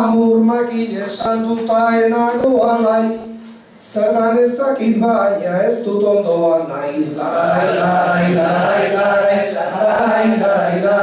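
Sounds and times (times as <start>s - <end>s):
man singing unaccompanied: 7.1s - 11.0s.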